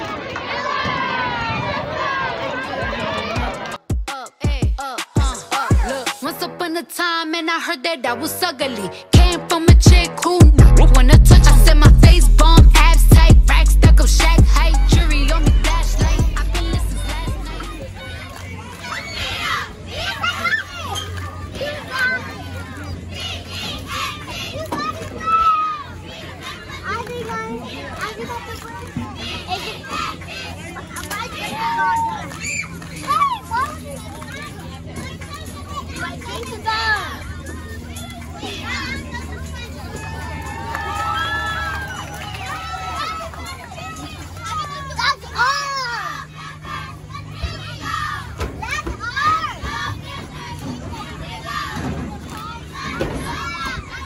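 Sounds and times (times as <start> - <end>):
children shouting: 0.0 - 6.3, 12.4 - 54.0
outdoor chatter: 0.0 - 54.0
long high held shout: 31.4 - 32.6, 40.0 - 43.4.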